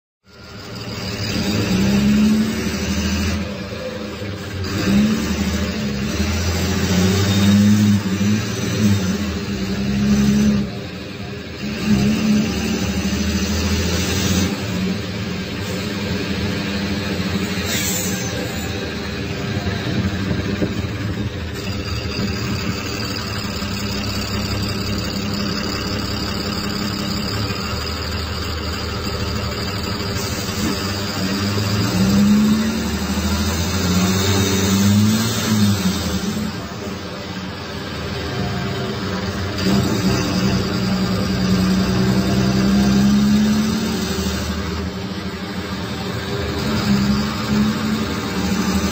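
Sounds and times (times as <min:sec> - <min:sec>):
bus diesel engine: 0:00.2 - 0:48.9
high turbo whine: 0:00.2 - 0:48.9.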